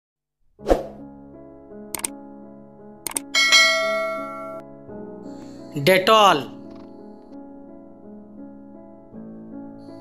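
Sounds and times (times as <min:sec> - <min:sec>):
soft background music: 0:00.6 - 0:10.0
bright bell ding: 0:03.4 - 0:04.6.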